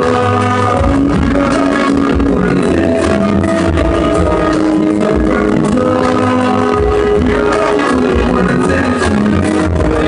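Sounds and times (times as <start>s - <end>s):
heavy bass line: 0.0s - 10.0s.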